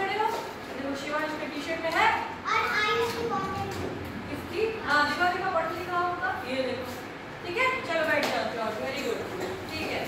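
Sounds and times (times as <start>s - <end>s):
young children speaking: 2.4s - 4.1s.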